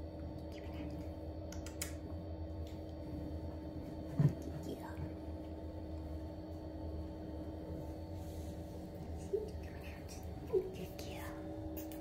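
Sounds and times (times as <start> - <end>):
steady low hum: 0.0 - 12.0
person whispering softly: 0.5 - 1.1, 9.2 - 11.5.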